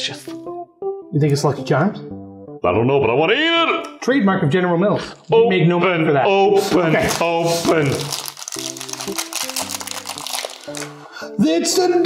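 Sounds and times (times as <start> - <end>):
background music with held notes: 0.0 - 12.0
packaging crinkling as torn open: 7.0 - 11.0.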